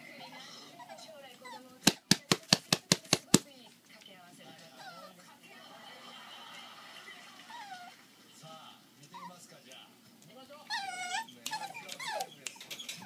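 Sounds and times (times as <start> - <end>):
puppies whining: 0.0 - 1.8, 4.6 - 5.4, 7.3 - 8.1, 9.0 - 9.6, 10.6 - 13.0.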